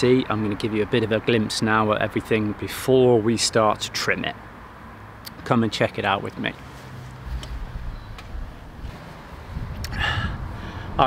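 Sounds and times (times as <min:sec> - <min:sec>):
wind rumble on microphone: 0:07.2 - 0:11.0.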